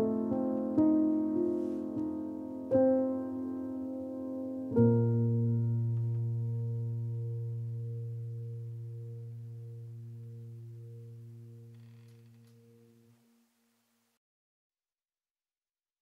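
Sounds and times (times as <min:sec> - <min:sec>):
low piano chord ringing: 0:00.0 - 0:13.1.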